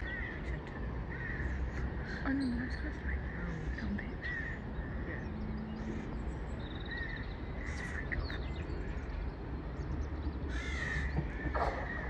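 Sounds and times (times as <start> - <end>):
bird harsh calls: 0.0 - 12.0
low steady rumble: 0.0 - 12.0.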